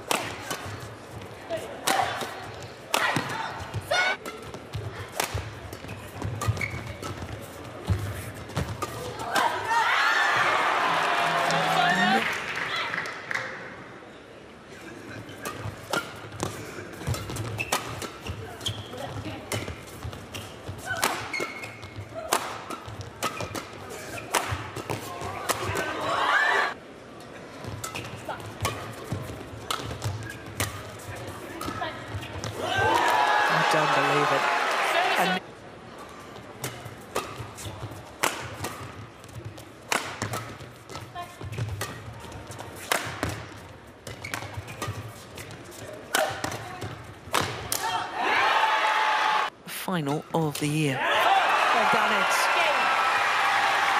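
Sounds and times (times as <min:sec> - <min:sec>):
racket hitting shuttlecock: 0:00.0 - 0:00.9, 0:01.8 - 0:09.8, 0:15.4 - 0:18.8, 0:19.5 - 0:26.0, 0:27.7 - 0:34.1, 0:36.6 - 0:39.0, 0:39.9 - 0:48.0
people shouting and cheering: 0:09.3 - 0:13.1, 0:25.5 - 0:26.8, 0:32.6 - 0:35.4, 0:47.8 - 0:49.5, 0:51.0 - 0:53.9.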